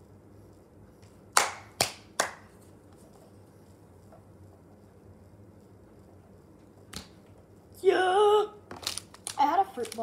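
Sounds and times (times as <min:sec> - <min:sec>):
sharp hand claps: 0:01.3 - 0:02.5.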